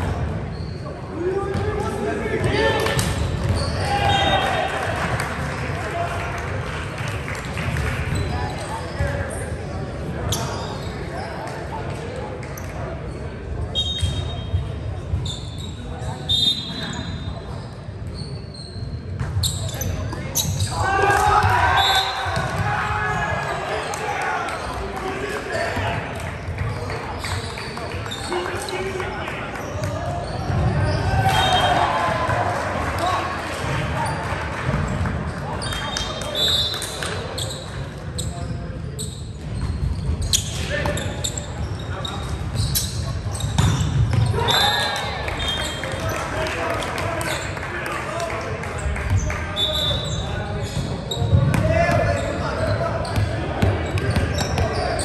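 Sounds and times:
sneakers squeaking: 0.0s - 5.2s, 7.4s - 11.8s, 12.4s - 32.2s, 33.0s - 46.4s, 47.0s - 47.6s, 48.6s - 55.0s.

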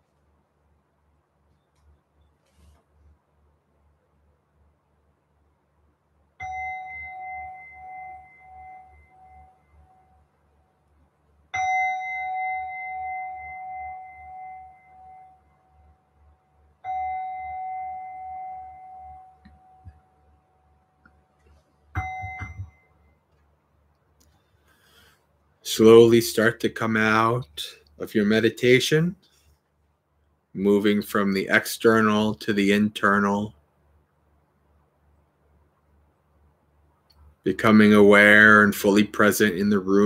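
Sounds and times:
meditation bell ringing: 6.4s - 10.3s, 11.6s - 15.9s, 16.8s - 19.8s, 22.0s - 22.9s.

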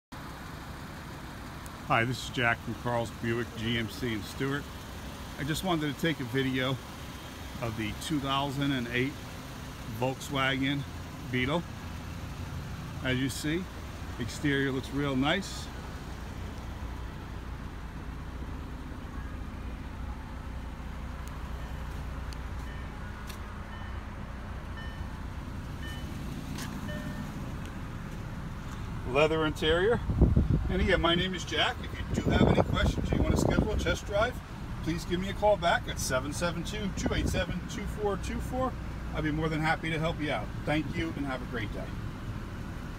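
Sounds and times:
car engine idling: 0.1s - 42.9s
man's voice: 1.9s - 4.7s, 7.6s - 9.2s, 13.0s - 15.8s, 29.1s - 42.0s
faint short beep: 22.6s - 24.1s, 25.8s - 26.2s, 26.8s - 27.4s.

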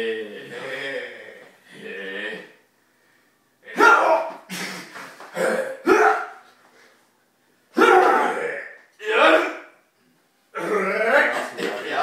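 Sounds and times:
men grunting and straining: 0.0s - 2.6s, 3.6s - 6.4s, 7.8s - 9.8s, 10.5s - 12.0s.

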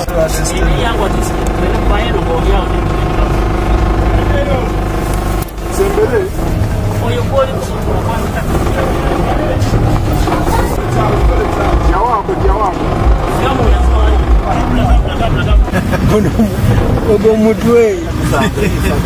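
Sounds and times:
car engine running: 0.0s - 19.0s
people talking: 0.0s - 19.0s.

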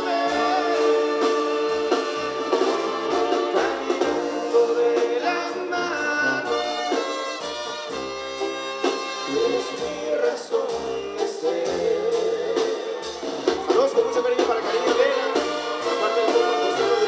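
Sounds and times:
brass band playing: 0.0s - 17.0s
sousaphone bass line: 9.2s - 17.0s.

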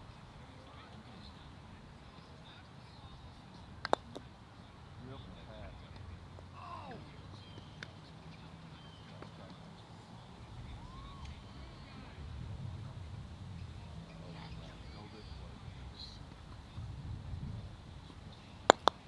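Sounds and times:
outdoor background noise: 0.0s - 19.0s
croquet ball hit click: 3.8s - 4.3s, 18.7s - 19.0s.

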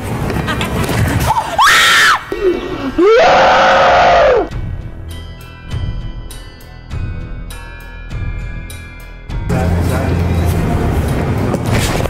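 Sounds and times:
person screaming in fright: 1.3s - 4.5s.

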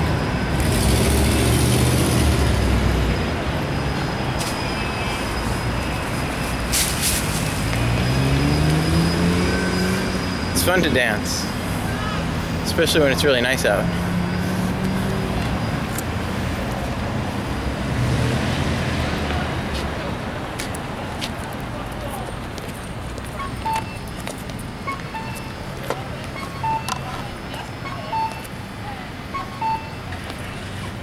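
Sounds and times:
road traffic rumble: 0.0s - 31.0s
vehicle passing: 6.3s - 21.2s
short electronic beeps: 23.3s - 28.6s, 29.3s - 30.2s.

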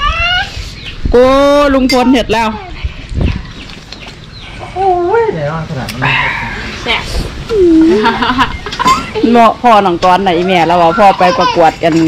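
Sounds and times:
person laughing: 7.5s - 9.2s.

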